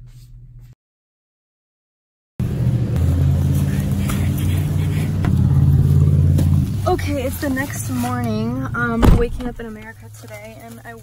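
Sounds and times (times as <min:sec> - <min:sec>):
low steady engine hum: 0:02.4 - 0:11.0.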